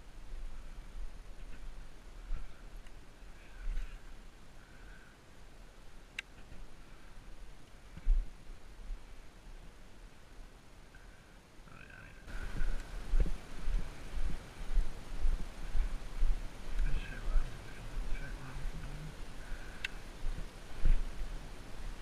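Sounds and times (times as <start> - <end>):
wind rumble on microphone: 12.3 - 22.0.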